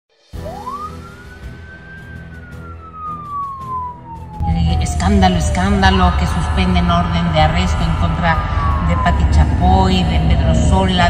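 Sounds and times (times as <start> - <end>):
police siren wailing: 0.4 - 11.0.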